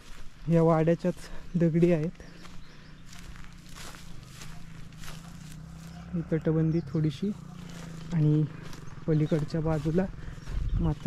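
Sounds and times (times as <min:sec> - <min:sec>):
footsteps on dry grass and stones: 0:00.0 - 0:11.0.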